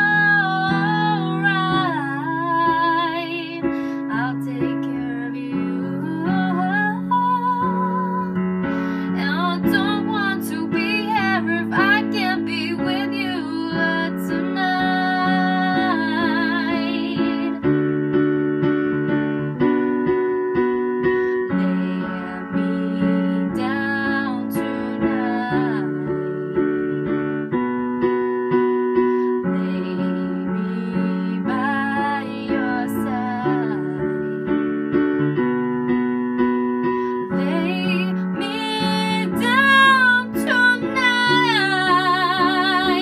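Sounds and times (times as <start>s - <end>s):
woman singing soul ballad: 0.0s - 17.7s, 21.4s - 26.6s, 29.4s - 34.6s, 37.1s - 43.0s
digital piano chords: 0.0s - 43.0s.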